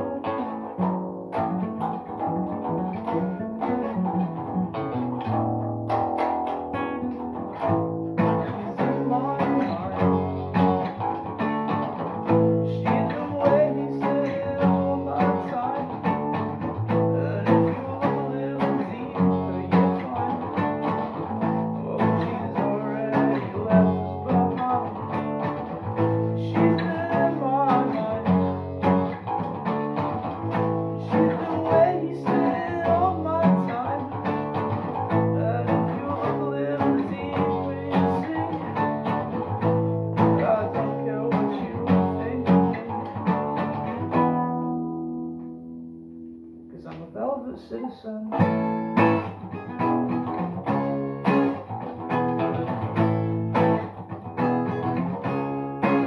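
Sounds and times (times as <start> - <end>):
acoustic guitar strumming: 0.0 - 56.0.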